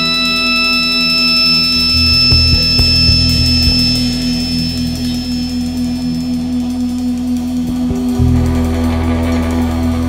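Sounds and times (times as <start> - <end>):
low bass notes: 1.6 - 10.0.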